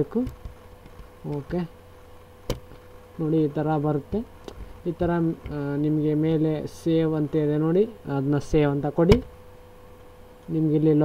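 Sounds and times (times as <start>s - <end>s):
faint buzzing hum: 0.0s - 11.0s.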